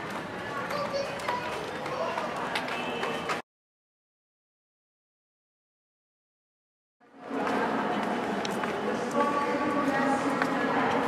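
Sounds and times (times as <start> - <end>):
footsteps on concrete: 0.0 - 3.4
murmur of voices: 0.0 - 3.4, 7.1 - 11.0.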